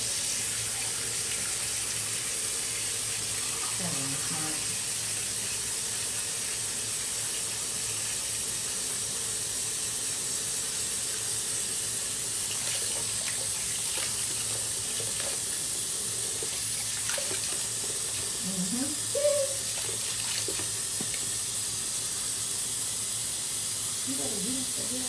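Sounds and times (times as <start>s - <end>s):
water running from a tap: 0.0s - 25.0s.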